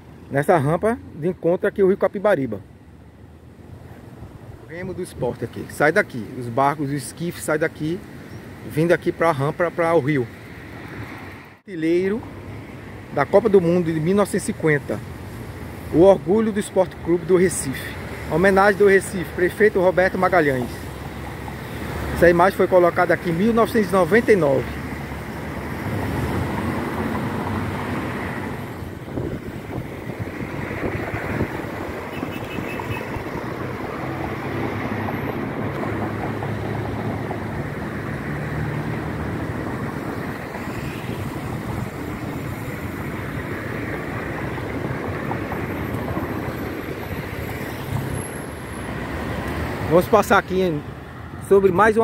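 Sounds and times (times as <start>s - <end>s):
road traffic rumble: 0.0s - 52.0s.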